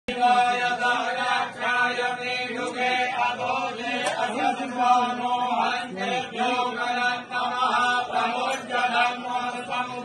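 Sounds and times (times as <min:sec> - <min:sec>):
person chanting mantras: 0:00.1 - 0:10.0.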